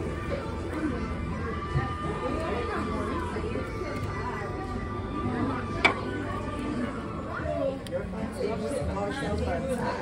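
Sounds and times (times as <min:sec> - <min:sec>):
diners talking: 0:00.0 - 0:10.0.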